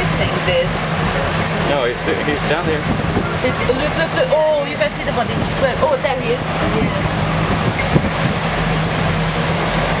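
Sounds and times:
boat engine humming: 0:00.0 - 0:10.0
sea waves: 0:00.0 - 0:10.0
wind: 0:00.0 - 0:10.0.

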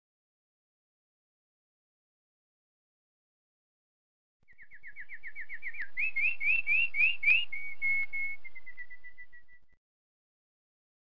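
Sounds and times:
songbird singing: 0:04.5 - 0:09.8.

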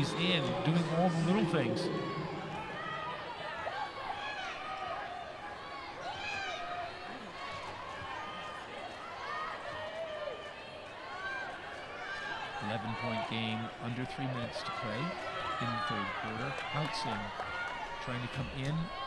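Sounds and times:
arena crowd chattering: 0:00.0 - 0:19.0.

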